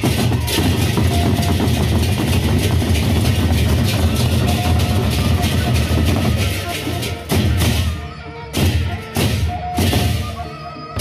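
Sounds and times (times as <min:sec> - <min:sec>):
large barrel drums rumbling: 0:00.0 - 0:07.9.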